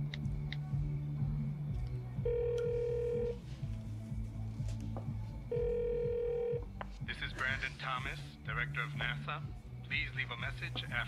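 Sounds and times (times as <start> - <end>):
soft background music: 0.0 - 11.0
telephone ringback tone: 2.3 - 3.4, 5.5 - 6.6.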